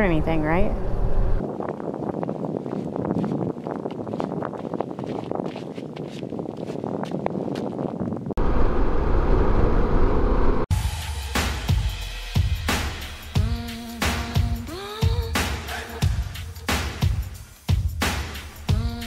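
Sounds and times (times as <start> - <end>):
deep wind rumble on microphone: 0.0 - 10.7
wind and road noise: 0.0 - 10.7.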